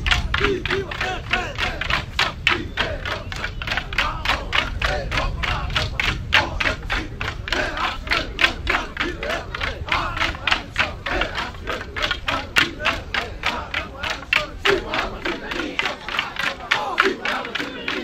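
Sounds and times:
dance sticks clacking together: 0:00.0 - 0:18.0
men shouting and chanting: 0:00.0 - 0:18.0.

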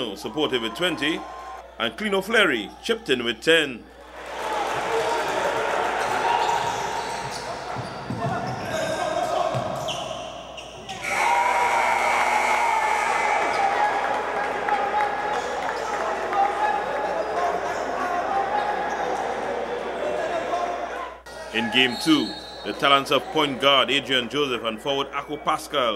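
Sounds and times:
crowd and player voices echoing: 0:00.0 - 0:25.9.

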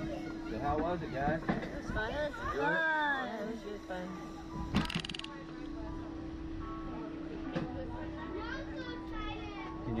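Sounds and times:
children talking: 0:00.0 - 0:04.8, 0:07.1 - 0:09.9
steady hum: 0:00.0 - 0:08.9.

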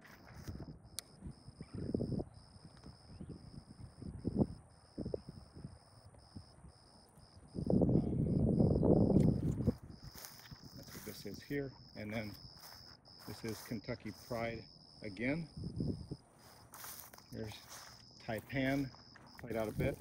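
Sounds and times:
footsteps in grass: 0:00.0 - 0:00.7, 0:09.2 - 0:14.6, 0:16.2 - 0:20.0
wind buffeting microphone: 0:00.0 - 0:06.8, 0:07.4 - 0:11.0, 0:15.4 - 0:16.3.

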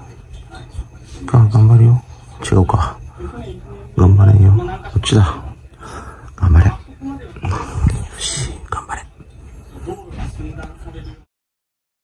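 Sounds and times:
breathy whisper-like hiss: 0:05.7 - 0:06.8.

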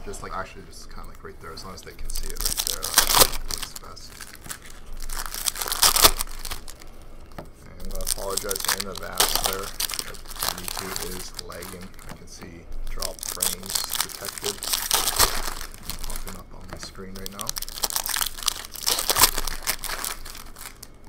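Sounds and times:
cards rustling: 0:01.0 - 0:21.0
foil wrappers crinkling and tearing: 0:01.0 - 0:21.0.

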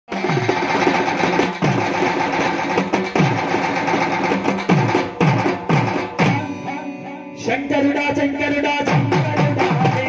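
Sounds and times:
held instrument tones: 0:06.1 - 0:08.6.

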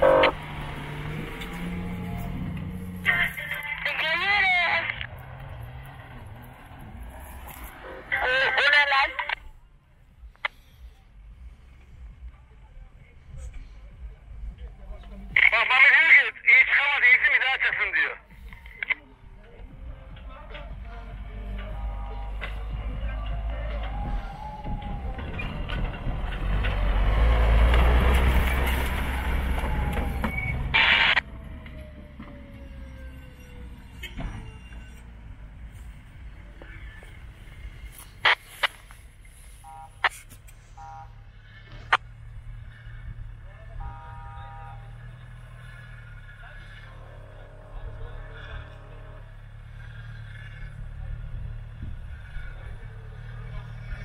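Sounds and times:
tyres on dirt: 0:00.0 - 0:09.5, 0:14.6 - 0:54.0
pickup truck engine: 0:00.0 - 0:54.0
loud voices: 0:12.8 - 0:27.8, 0:43.0 - 0:54.0.

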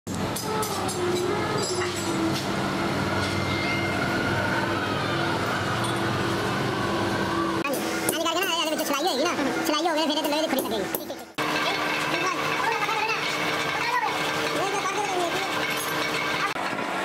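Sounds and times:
motor drone: 0:00.8 - 0:08.0.

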